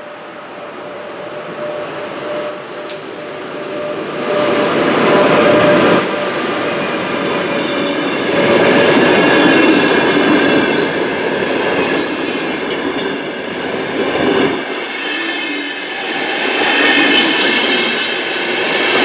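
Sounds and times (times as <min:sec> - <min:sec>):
electric locomotive passing: 0:00.0 - 0:19.0
train coaches clattering over rail joints: 0:04.4 - 0:19.0.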